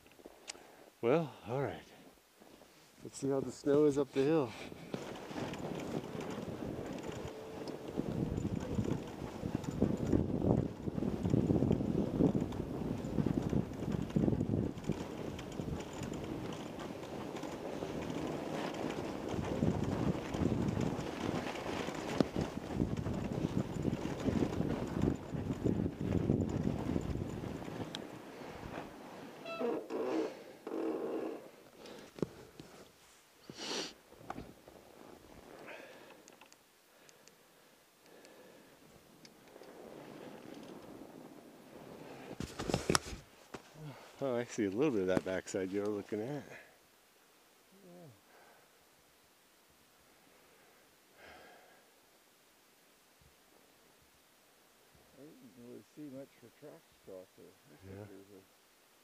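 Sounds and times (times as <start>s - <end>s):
bike tires crunching through snow: 2.4s - 30.5s, 31.8s - 36.2s, 38.4s - 46.7s.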